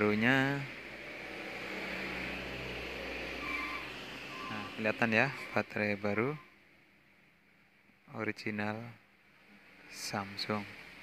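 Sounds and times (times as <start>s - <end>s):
background hiss: 0.0s - 11.0s
steady low hum: 0.0s - 11.0s.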